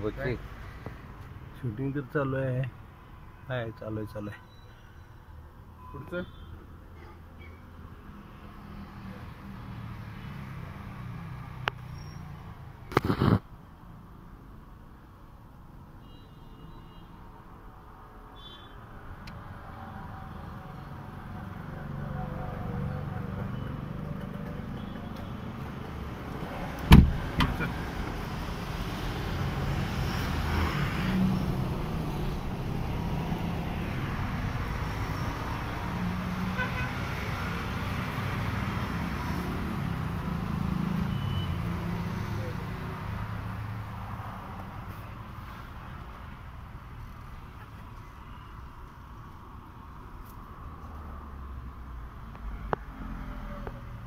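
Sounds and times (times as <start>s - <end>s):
sharp knock: 26.9s - 27.6s.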